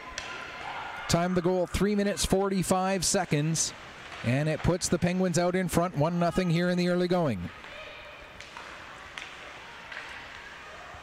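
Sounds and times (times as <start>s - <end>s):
arena building noise: 0.0s - 11.0s
sticks and puck clicking: 8.4s - 10.6s.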